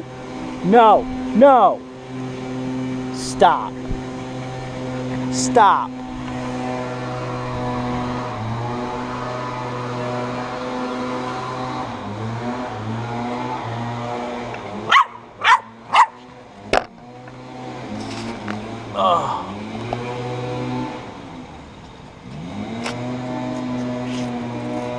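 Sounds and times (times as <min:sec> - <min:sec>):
drone motors humming: 0:00.0 - 0:24.9
dog barking: 0:14.9 - 0:16.2.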